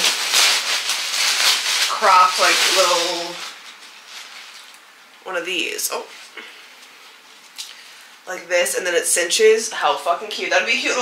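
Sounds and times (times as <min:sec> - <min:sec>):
packaging and clothing rustling: 0:00.0 - 0:05.0.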